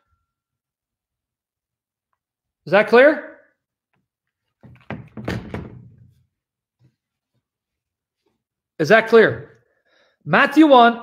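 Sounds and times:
dull thumps and knocks: 4.6s - 6.2s.

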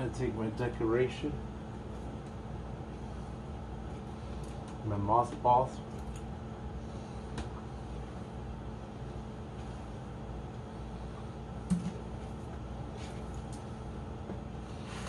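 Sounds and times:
air pump humming: 0.0s - 15.0s.

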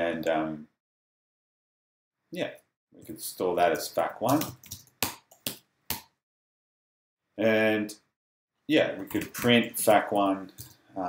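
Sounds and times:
computer keyboard clicks: 4.3s - 5.5s.

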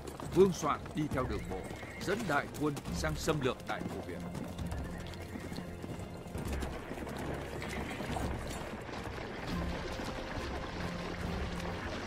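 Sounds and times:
background music: 0.0s - 12.0s
clattering horse hoofbeats: 0.0s - 12.0s.

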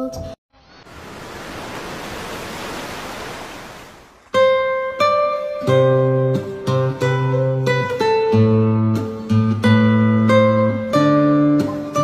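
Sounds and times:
small wave washing onto sand: 0.8s - 4.3s.

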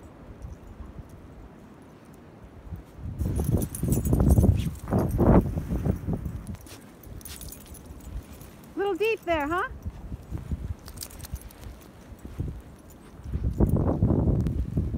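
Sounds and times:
dogs scuffling in snow: 2.8s - 14.9s.

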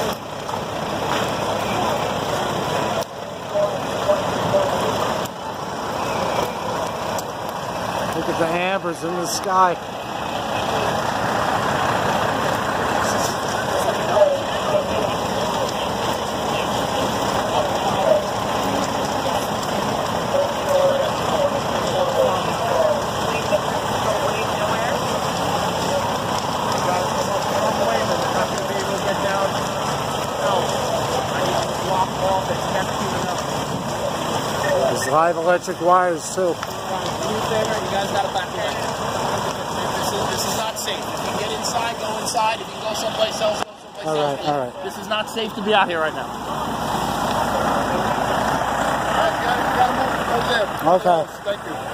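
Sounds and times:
fire engines running: 0.0s - 51.9s
house fire burning: 0.0s - 51.9s
indistinct voices: 0.0s - 51.9s.

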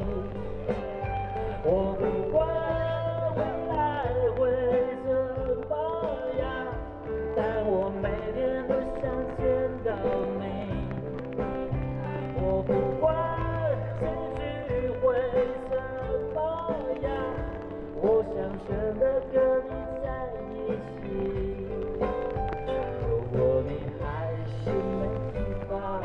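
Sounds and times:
live band music through pa: 0.0s - 26.0s
person singing: 0.0s - 26.0s.

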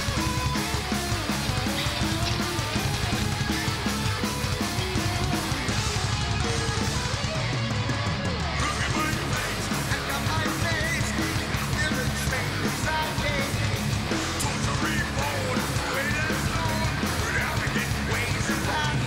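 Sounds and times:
distorted electric guitars riffing: 0.0s - 19.0s
fast steady drums: 0.0s - 19.0s
wavering lead guitar line: 0.0s - 19.0s.

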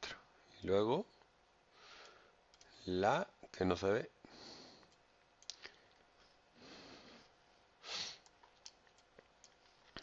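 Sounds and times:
soft breathing: 1.7s - 2.8s, 4.2s - 8.3s
breath or sniff: 6.6s - 8.2s.

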